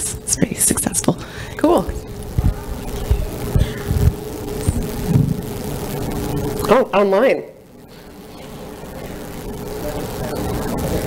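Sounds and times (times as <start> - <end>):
steady hum: 0.0 - 11.0
low muffled thumps: 2.4 - 5.5.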